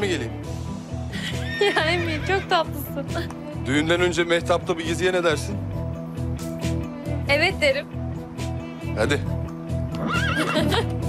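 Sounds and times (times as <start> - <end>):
background music with beat: 0.0 - 11.0
horse whinnying: 1.3 - 2.6, 9.9 - 10.9.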